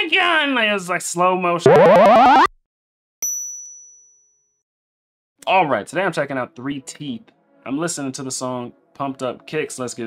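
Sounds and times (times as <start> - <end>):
loud rising pitched sound: 1.7 - 2.5.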